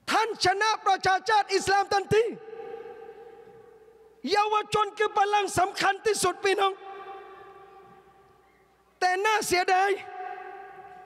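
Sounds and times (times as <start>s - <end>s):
man's voice over public address: 0.0s - 3.6s, 4.2s - 8.1s, 9.0s - 11.0s
public address echo ringing: 0.0s - 11.0s.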